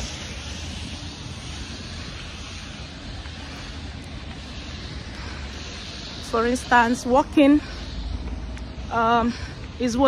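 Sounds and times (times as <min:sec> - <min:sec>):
road traffic: 0:00.0 - 0:10.0
wind rumble on microphone: 0:00.0 - 0:10.0.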